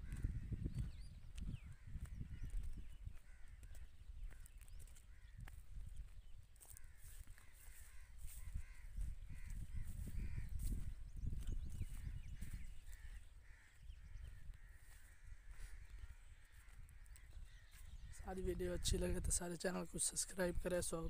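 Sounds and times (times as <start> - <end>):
birds harsh calls: 0.0 - 19.0
wind rumble on microphone: 0.0 - 19.5.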